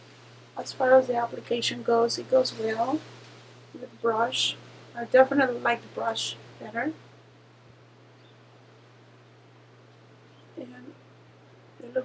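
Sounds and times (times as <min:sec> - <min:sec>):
soft even hiss: 0:00.0 - 0:12.0
steady low hum: 0:00.0 - 0:12.0.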